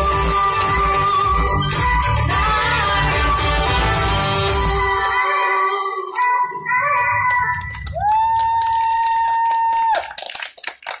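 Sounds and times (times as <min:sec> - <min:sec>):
audience applauding: 0:07.3 - 0:11.0.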